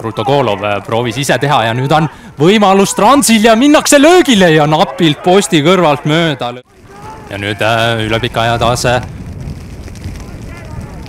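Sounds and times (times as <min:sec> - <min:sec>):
wind noise on microphone: 0:06.7 - 0:11.0.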